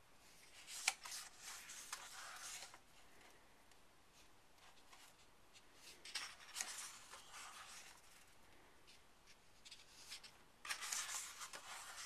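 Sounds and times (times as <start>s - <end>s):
paper page rustling: 0.4s - 3.1s, 4.6s - 8.4s, 9.3s - 12.0s.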